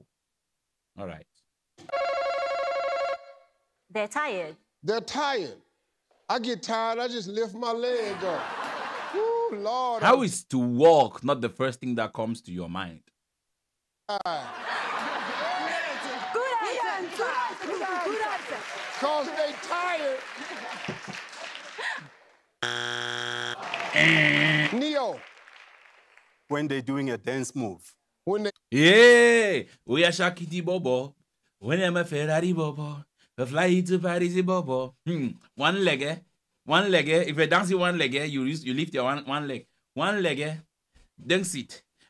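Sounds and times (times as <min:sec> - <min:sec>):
harsh game show buzzer: 0:22.6 - 0:25.2.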